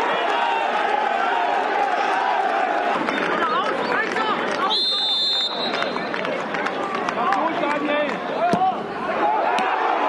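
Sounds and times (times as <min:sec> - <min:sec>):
stadium crowd voices: 0:00.0 - 0:10.0
referee's whistle blast: 0:04.7 - 0:06.0.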